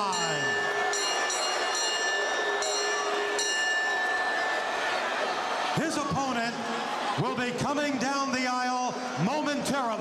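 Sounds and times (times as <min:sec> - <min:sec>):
crowd roaring: 0:00.0 - 0:10.0.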